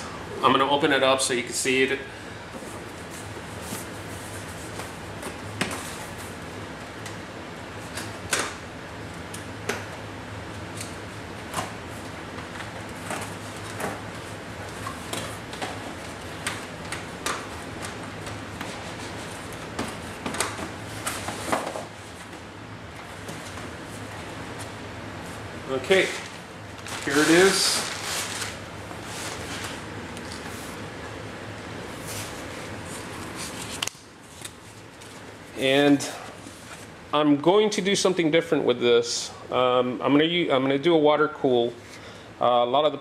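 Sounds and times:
packaging rustling: 25.8 - 30.8.

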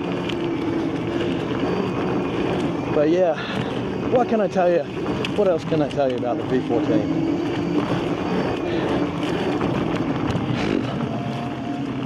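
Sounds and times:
faint steady whine: 0.0 - 12.0
rolling and wind noise: 0.0 - 12.0.

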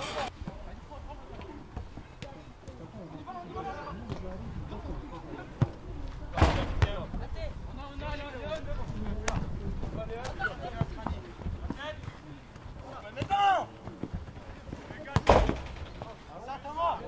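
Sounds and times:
loud sharp thump: 6.3 - 7.0, 15.2 - 16.1
players shouting: 12.8 - 13.8.

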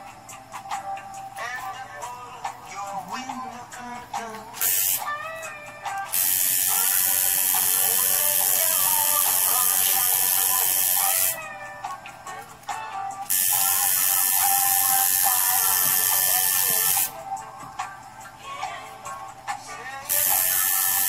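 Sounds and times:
background music: 0.0 - 21.0
tattoo machine buzzing: 4.6 - 11.8, 13.2 - 17.2, 20.0 - 21.0.

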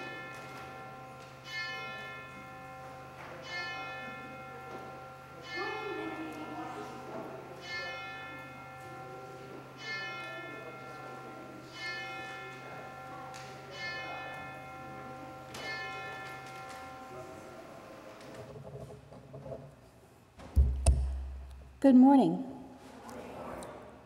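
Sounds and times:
church bell tolling: 0.0 - 18.5.

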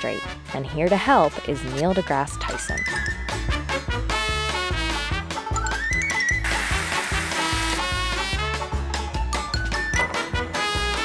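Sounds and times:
background music with bass line: 0.0 - 11.0
hose spraying into plastic bucket: 6.4 - 8.0.

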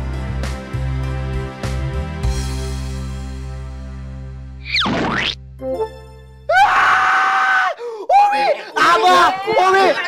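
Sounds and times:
background music: 0.0 - 7.3
man screaming: 6.5 - 10.0.

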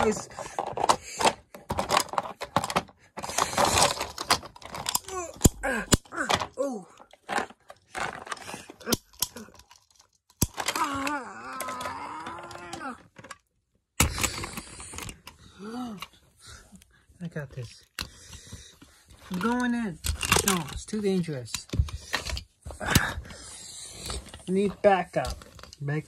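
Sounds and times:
plastic toys clattering: 0.0 - 16.2, 17.2 - 26.0
person making groaning sound effects: 5.0 - 7.0, 10.6 - 13.1, 15.6 - 16.1.

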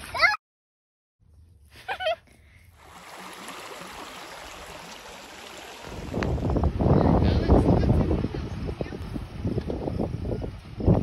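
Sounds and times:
wind on microphone: 5.7 - 11.0.

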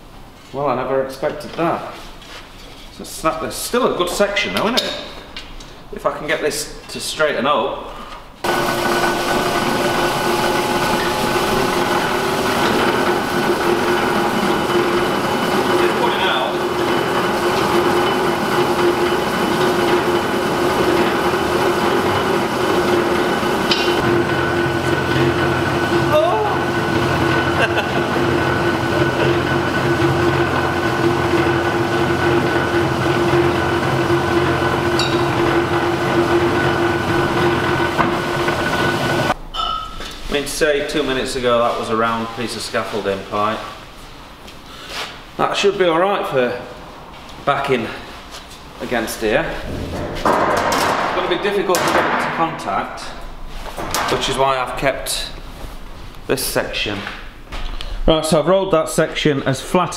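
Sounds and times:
deep hum: 8.4 - 40.2, 49.3 - 51.8
metal rolling machine whine: 8.4 - 40.2, 49.3 - 52.0.

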